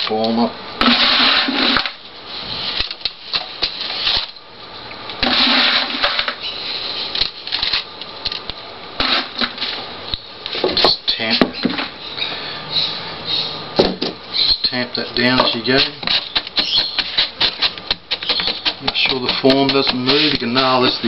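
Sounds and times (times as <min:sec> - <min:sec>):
gritty scraping of stones: 0:00.8 - 0:04.4, 0:05.2 - 0:07.9, 0:09.0 - 0:09.9, 0:15.0 - 0:21.0.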